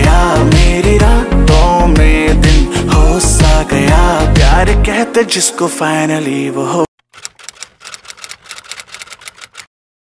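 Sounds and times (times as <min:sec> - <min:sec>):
keyboard key clicks: 0:07.0 - 0:09.7.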